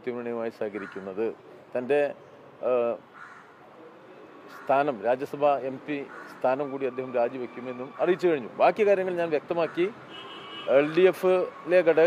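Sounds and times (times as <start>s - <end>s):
crow cawing: 0.7s - 1.2s, 3.1s - 3.6s, 6.0s - 6.8s, 9.5s - 10.6s
man speaking: 4.6s - 10.0s, 10.7s - 12.0s.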